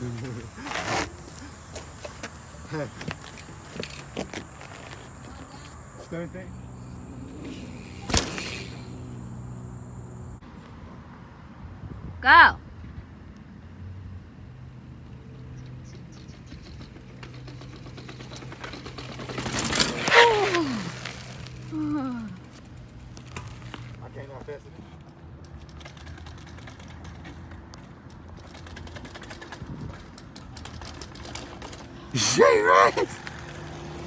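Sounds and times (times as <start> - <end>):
bike clattering down stairs: 7.3 - 9.0, 15.8 - 21.7, 28.1 - 32.6.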